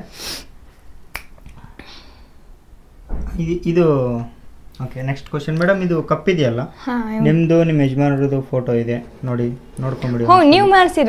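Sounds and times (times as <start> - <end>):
finger snap: 1.1 - 1.6.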